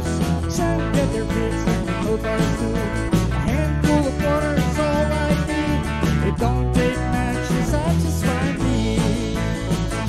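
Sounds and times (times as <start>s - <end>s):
acoustic guitar: 0.0s - 10.0s
bass: 0.0s - 10.0s
drums: 0.0s - 10.0s.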